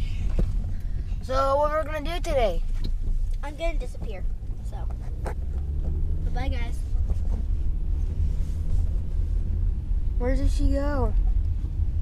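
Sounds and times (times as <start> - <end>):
car road rumble inside cabin: 0.0 - 12.0.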